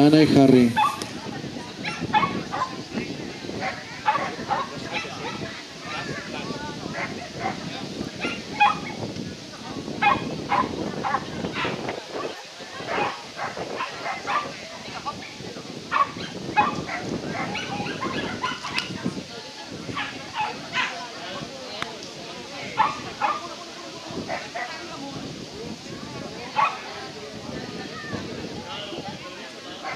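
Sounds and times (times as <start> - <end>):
background voices: 0.0 - 29.9
dogs barking: 0.7 - 1.2, 1.8 - 2.8, 3.6 - 9.0, 10.0 - 19.0, 19.9 - 21.1, 22.8 - 23.6, 24.2 - 24.9, 26.5 - 27.0, 29.7 - 29.9.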